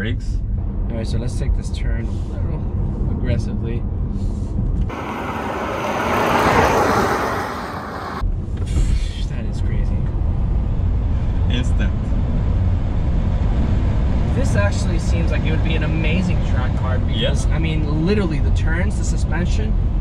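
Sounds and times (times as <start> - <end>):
road and tyre rumble in car: 0.0 - 20.0.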